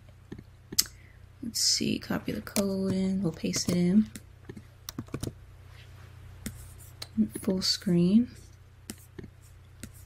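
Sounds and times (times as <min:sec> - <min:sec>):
computer keyboard keys clicking: 0:02.5 - 0:05.4.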